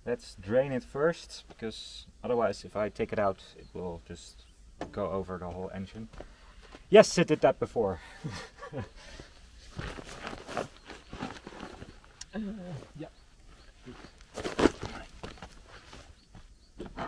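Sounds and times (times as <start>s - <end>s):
footsteps on dirt: 9.1s - 17.0s
handling noises: 9.1s - 17.0s.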